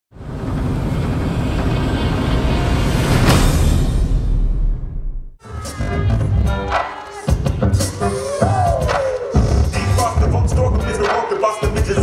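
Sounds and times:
deep rumbling drone: 0.2 - 5.1.

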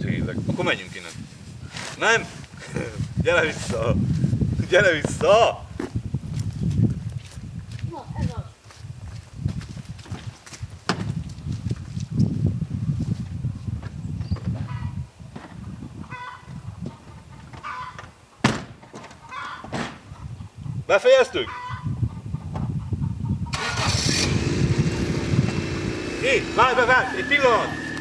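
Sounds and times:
sharp knock: 18.4 - 18.8.

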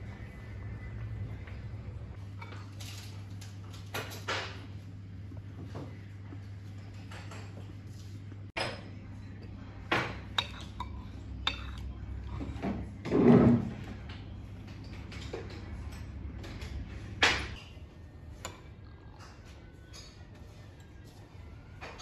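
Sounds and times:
metal spoon clinking on bowl: 10.3 - 11.9.

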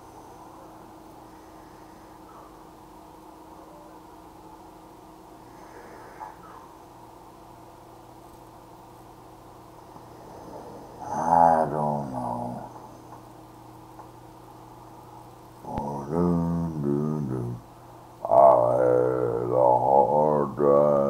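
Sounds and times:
man's wordless vocal sounds: 11.0 - 12.9, 15.6 - 21.0.

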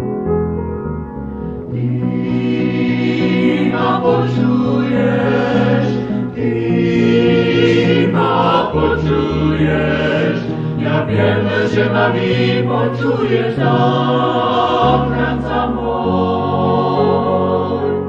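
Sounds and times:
vocal group singing in harmony: 1.7 - 18.0.

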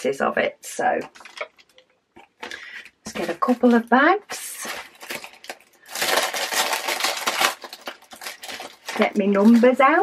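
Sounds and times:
foil bag crinkling: 1.1 - 10.0.

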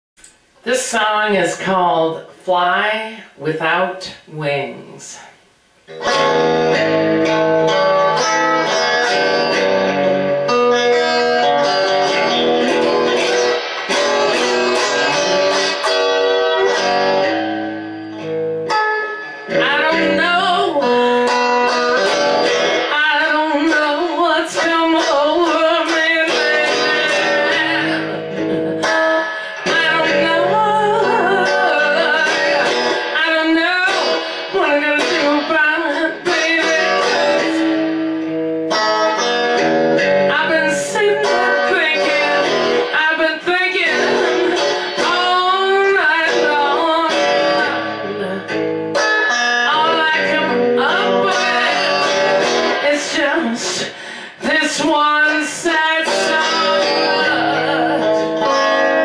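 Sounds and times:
bluesy electric guitar: 0.2 - 59.0
woman singing: 19.5 - 37.9, 40.2 - 48.7, 49.4 - 59.0.

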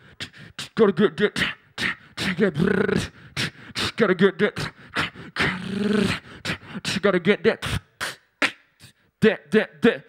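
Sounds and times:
beatboxing into microphone: 0.0 - 10.0.

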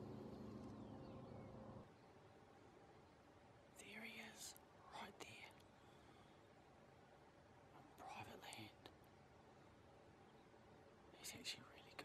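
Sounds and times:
man whispering: 3.8 - 5.6, 7.8 - 8.9, 11.1 - 12.0.

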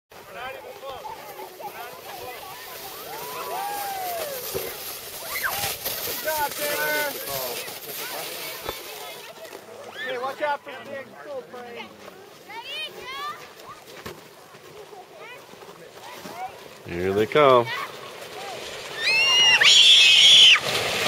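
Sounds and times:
children calling out and squealing: 2.6 - 5.8, 7.4 - 10.4, 17.7 - 20.6.

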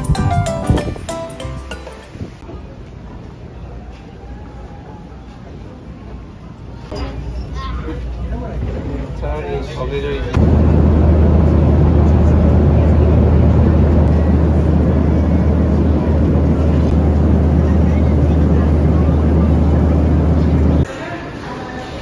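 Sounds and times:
airliner cabin engine drone: 10.2 - 20.9.

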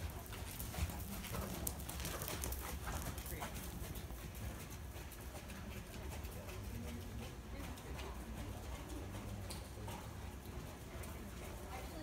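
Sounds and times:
horse hoofbeats on sand: 0.0 - 12.0.

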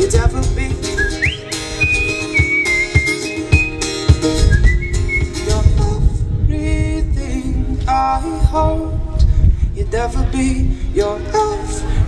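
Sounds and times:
acoustic guitar strumming: 0.0 - 6.4
whistled melody: 0.8 - 5.6.

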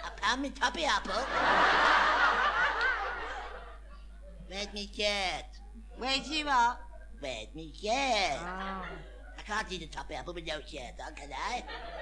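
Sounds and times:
studio audience laughter: 1.2 - 4.1.

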